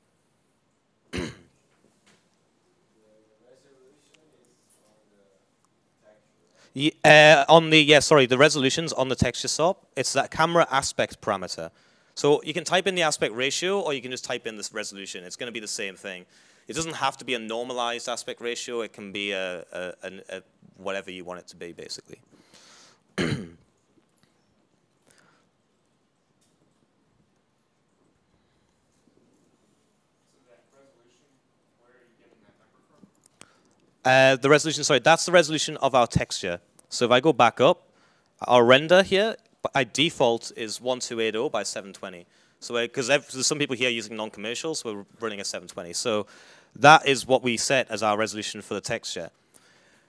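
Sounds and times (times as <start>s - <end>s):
man clearing throat: 1.1s - 1.6s, 23.2s - 23.7s.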